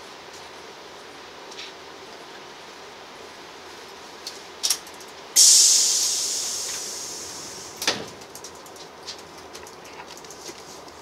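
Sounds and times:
railway carriage running noise: 0.0 - 11.0
compressed air hiss: 5.4 - 8.0.

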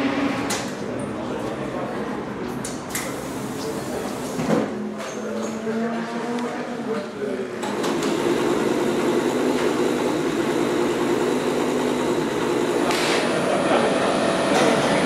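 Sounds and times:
engine idling: 8.0 - 13.6.

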